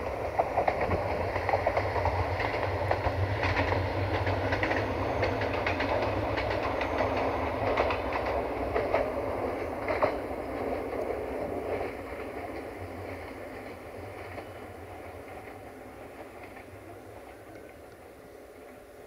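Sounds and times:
diesel train rumble: 0.0 - 19.0
wheels clicking over rail joints: 0.0 - 19.0.

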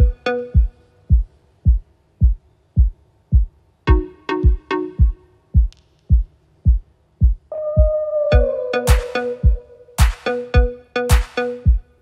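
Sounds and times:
electronic kick drum thumps: 0.0 - 12.0.

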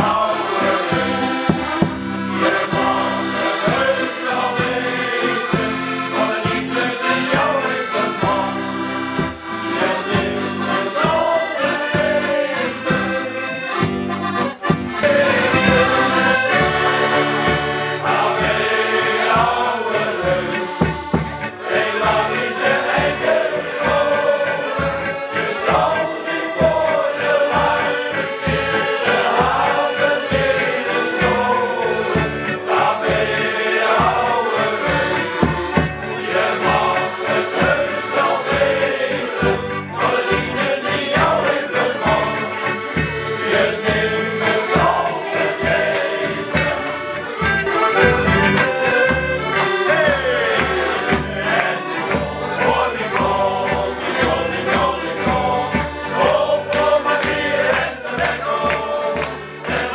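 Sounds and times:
male choir singing a sea shanty: 0.0 - 14.0, 14.6 - 59.9
accordion: 0.0 - 59.9
steady beat: 0.0 - 59.9.

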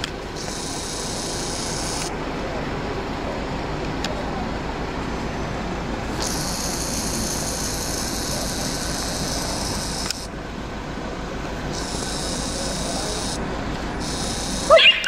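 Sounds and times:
vehicle engine idling: 0.0 - 15.0
high hiss: 0.4 - 2.1, 6.2 - 10.3, 11.7 - 13.4, 14.0 - 15.0.

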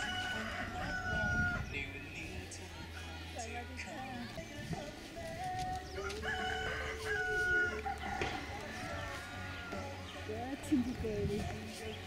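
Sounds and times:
rooster crowing: 0.0 - 1.7, 6.0 - 10.0.

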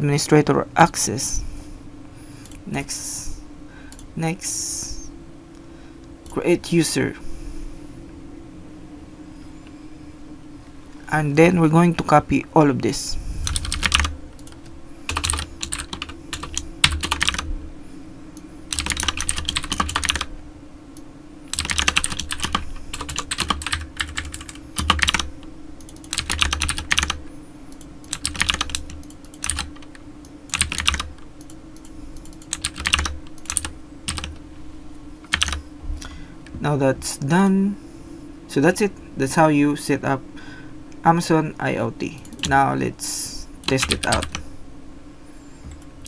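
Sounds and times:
faint low hum: 0.0 - 46.0
computer keyboard typing: 13.4 - 17.5, 18.7 - 20.3, 21.5 - 34.4, 35.2 - 35.6, 42.2 - 42.6, 43.6 - 44.4.

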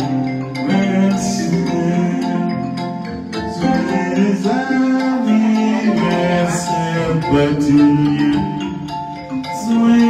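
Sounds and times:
man singing: 0.0 - 10.0.

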